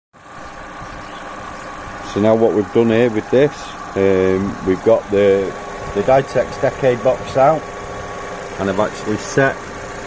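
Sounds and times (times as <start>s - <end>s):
car engine idling: 0.1s - 10.0s.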